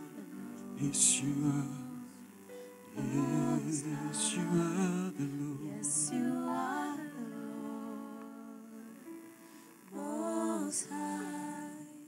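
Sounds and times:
worship singing: 0.0s - 12.0s.

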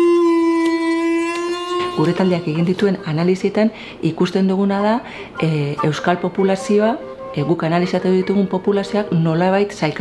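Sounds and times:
long wind instrument note: 0.0s - 2.8s, 6.2s - 7.9s.

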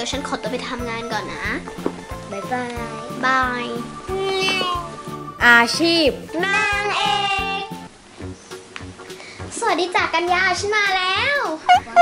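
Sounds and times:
light background music: 0.0s - 12.0s
child saying bye sing-song: 2.3s - 7.8s, 9.6s - 11.6s.

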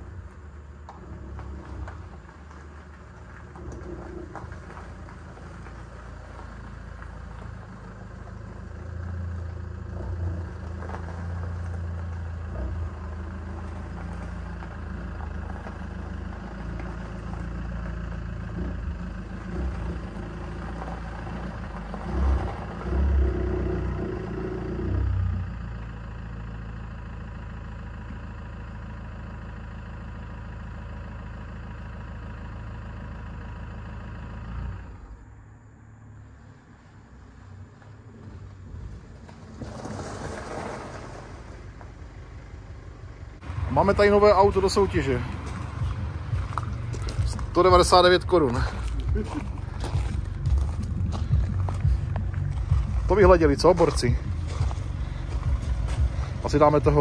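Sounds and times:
tyres on gravel: 0.0s - 35.3s, 36.2s - 57.0s
car engine running and revving: 0.0s - 57.0s.

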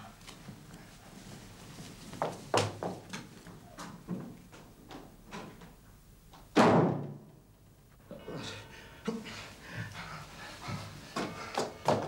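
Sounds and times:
heavy breathing: 8.0s - 12.0s.

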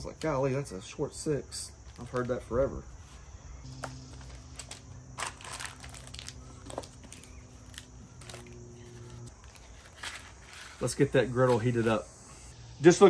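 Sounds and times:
faint low hum: 3.5s - 9.9s
paper crinkling: 4.4s - 11.9s.

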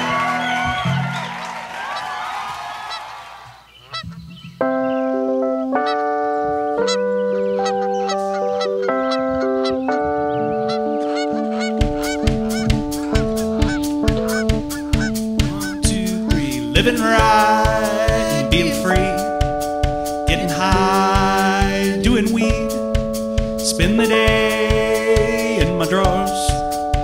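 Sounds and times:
electronic keyboard chords: 4.6s - 27.0s
steady drum beat: 11.6s - 27.0s.

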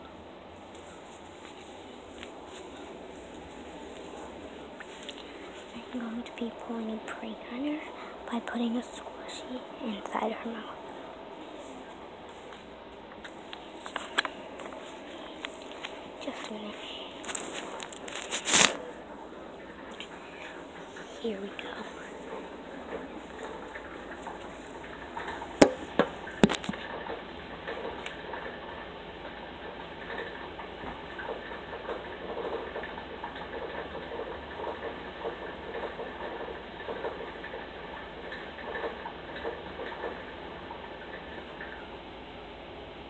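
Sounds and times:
faint rustles and taps: 0.6s - 6.2s, 11.6s - 19.0s, 19.9s - 28.6s
phone knocking on surface: 25.6s - 26.7s.

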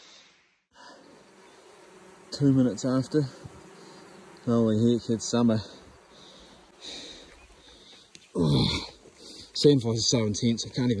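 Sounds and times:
buzzing of flies swarm: 0.8s - 11.0s.

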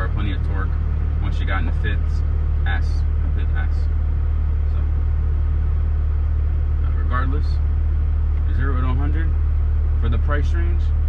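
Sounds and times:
man speaking: 0.0s - 4.0s, 6.8s - 7.7s, 8.4s - 9.4s, 10.0s - 11.0s
car engine and road noise: 0.0s - 11.0s.

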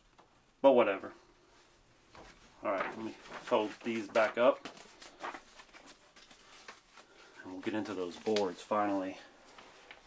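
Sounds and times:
paper poster rustling and crinkling: 1.5s - 10.0s.

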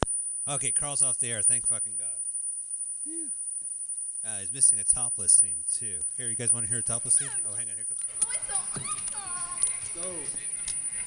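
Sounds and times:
faint steady hum: 0.0s - 11.0s
man speaking: 0.5s - 2.2s, 4.2s - 8.0s, 9.9s - 10.6s.

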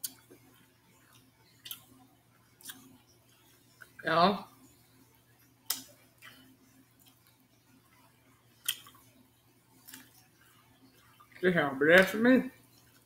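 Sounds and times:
chewing: 5.4s - 9.1s, 9.8s - 11.4s.

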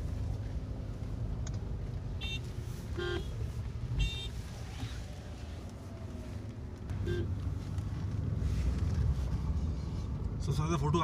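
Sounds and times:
car engine and road rumble: 0.0s - 11.0s
car horn toots: 2.2s - 3.3s, 7.0s - 7.3s.

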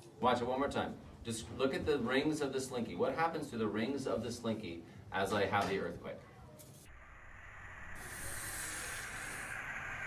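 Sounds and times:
steady hiss of noise: 0.0s - 10.0s.

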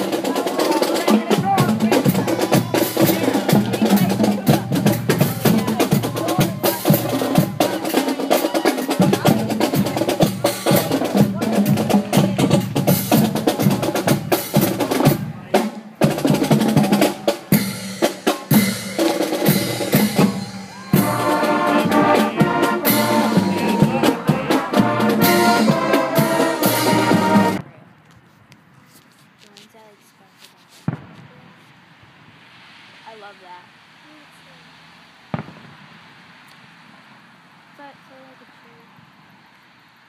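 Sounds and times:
marching band playing: 0.0s - 27.6s
snare and bass drums: 0.0s - 27.6s, 30.8s - 31.4s, 35.3s - 36.0s.

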